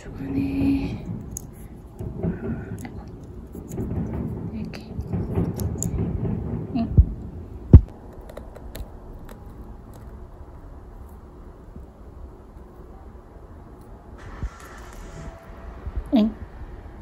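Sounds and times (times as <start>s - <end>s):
dull thumps: 0.2s - 8.0s
capsule shells clicking and rustling: 7.2s - 12.8s.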